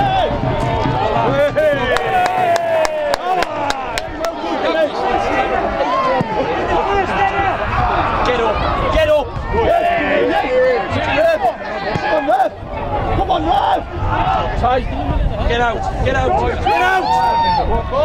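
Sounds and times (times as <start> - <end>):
crowd shouting and chanting: 0.0 - 18.0.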